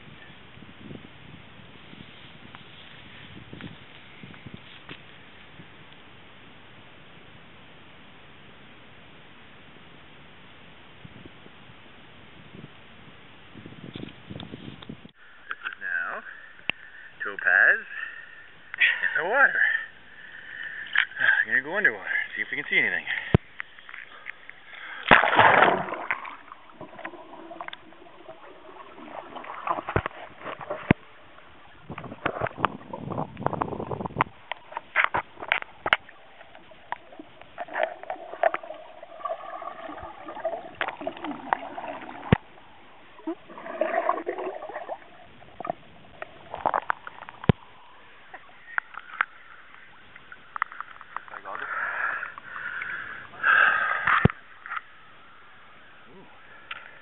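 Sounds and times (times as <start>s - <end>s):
underwater water movement: 20.1s - 55.1s
water splashing: 23.3s - 33.1s, 34.3s - 51.5s
sharp underwater clicks and knocks: 29.3s - 31.0s, 31.9s - 38.7s, 45.7s - 47.6s, 50.5s - 51.4s, 54.0s - 54.9s.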